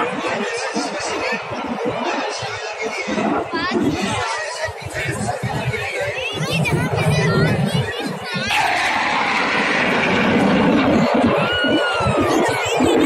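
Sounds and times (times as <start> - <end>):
crowd chatter: 0.0 - 13.0
jet aircraft roaring overhead: 0.0 - 13.0.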